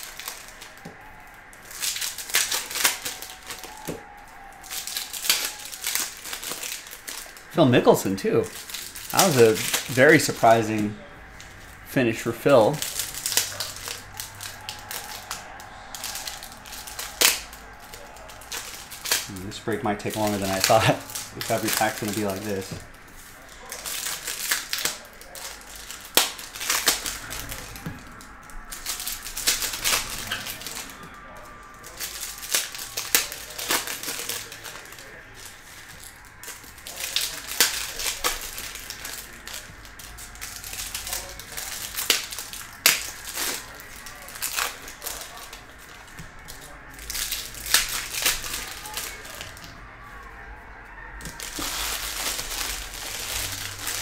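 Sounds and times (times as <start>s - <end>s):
cards being handled: 0.0s - 50.2s, 51.2s - 54.0s
foil wrappers tearing and crinkling: 0.0s - 50.5s, 51.2s - 54.0s.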